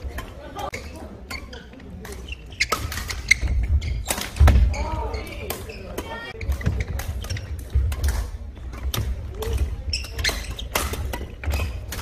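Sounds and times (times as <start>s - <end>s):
sneakers squeaking: 0.0s - 12.0s
racket hitting shuttlecock: 1.3s - 12.0s.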